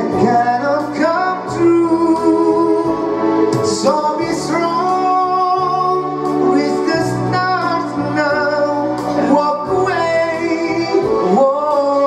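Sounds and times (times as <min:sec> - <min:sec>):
electronic keyboard accompaniment: 0:00.0 - 0:12.0
man singing a long note with vibrato: 0:00.0 - 0:12.0.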